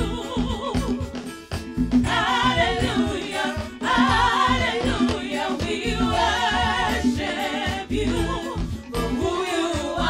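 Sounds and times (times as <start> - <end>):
gospel choir singing: 0.0 - 1.1, 2.0 - 10.0.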